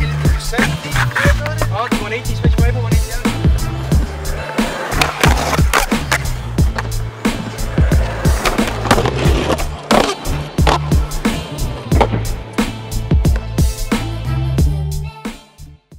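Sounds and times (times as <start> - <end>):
skateboard wheels rolling on concrete: 0.0 - 14.6
background music with steady beat: 0.0 - 15.9.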